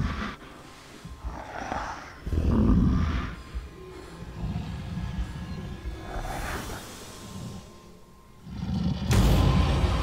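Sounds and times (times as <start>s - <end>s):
low drone: 0.0s - 10.0s.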